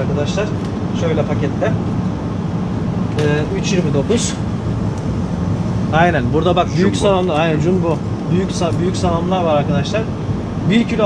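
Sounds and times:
refrigerator and ventilation hum: 0.0s - 11.0s
person speaking: 5.8s - 11.0s.

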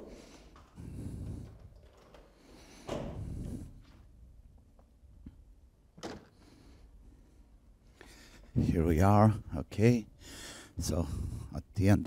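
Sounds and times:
door handle and latch noise: 0.0s - 3.5s.

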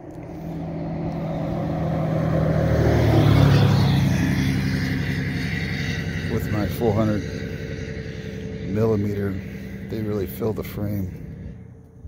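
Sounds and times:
vehicle passing: 0.0s - 12.0s.

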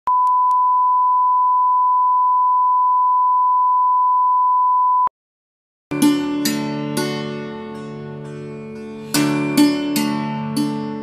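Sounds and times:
plucked-string music: 5.9s - 11.0s.

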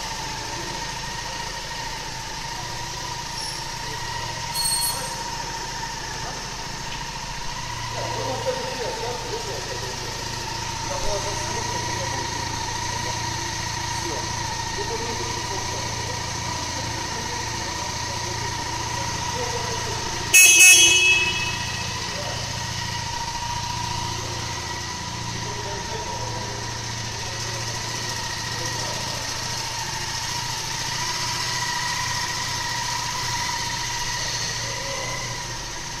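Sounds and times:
motorcycle engine idling: 0.0s - 36.0s
short loud horn beep: 20.3s - 22.6s.

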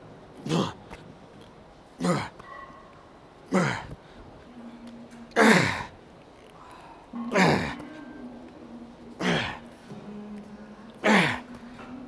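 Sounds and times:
man grunting with effort: 0.4s - 0.8s, 2.0s - 2.4s, 3.5s - 4.0s, 5.4s - 5.9s, 7.2s - 7.8s, 9.2s - 9.7s, 11.0s - 11.5s.

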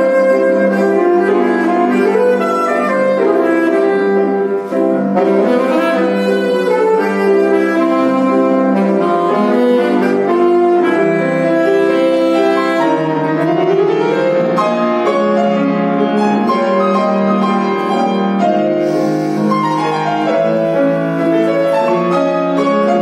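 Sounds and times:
piano chords: 0.0s - 23.0s
saxophone melody: 0.0s - 23.0s.

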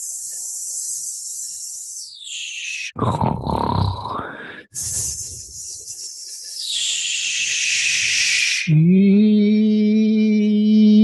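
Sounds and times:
person grunting exhale: 3.0s - 5.2s
breathy shh hiss: 4.2s - 8.7s
person humming a tone: 8.7s - 11.0s.

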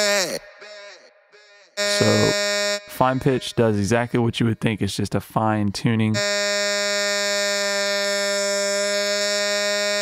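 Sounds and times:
buzzy held vocal tone: 0.0s - 1.0s, 1.8s - 4.4s.

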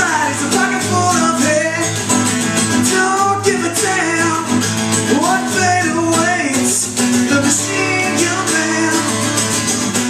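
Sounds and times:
acoustic guitar strummed chords: 0.0s - 10.0s.

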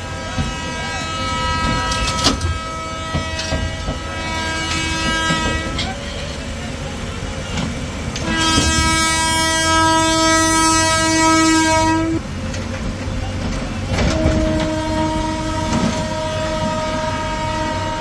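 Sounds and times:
train horn blasts: 0.0s - 6.5s, 8.2s - 12.3s, 13.9s - 18.0s
low rumble of passing train: 0.0s - 18.0s.

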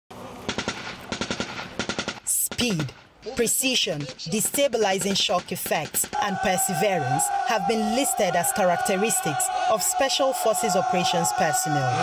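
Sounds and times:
automatic gunfire bursts: 0.5s - 2.8s.

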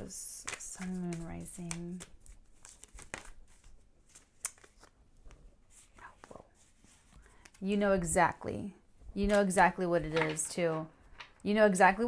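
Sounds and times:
cards being shuffled: 0.4s - 7.7s, 9.3s - 11.4s.

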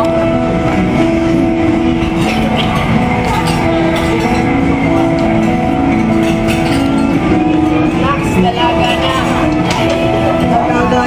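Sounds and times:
live band playing amplified music: 0.0s - 11.0s.

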